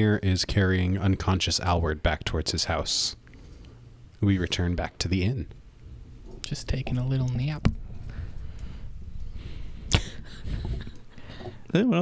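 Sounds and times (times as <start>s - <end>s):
low rumbling room noise: 0.0s - 12.0s.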